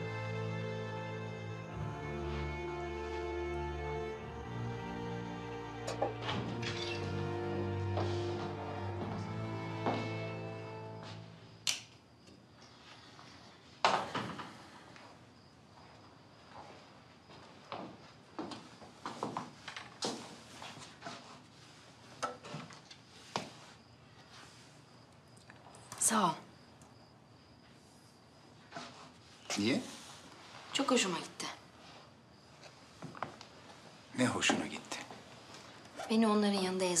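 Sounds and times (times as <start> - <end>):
sustained string notes: 0.0 - 11.6.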